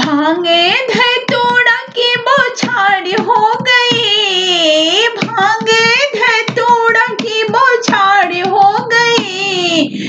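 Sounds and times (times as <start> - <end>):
hand claps: 0.0 - 0.2, 5.1 - 9.4
person singing folk song: 0.0 - 10.0.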